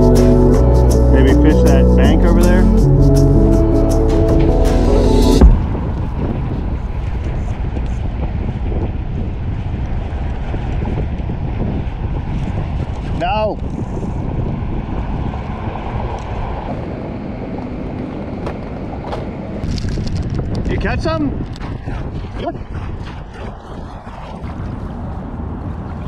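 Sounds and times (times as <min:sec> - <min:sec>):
wind rumbling on microphone: 0:00.0 - 0:26.0.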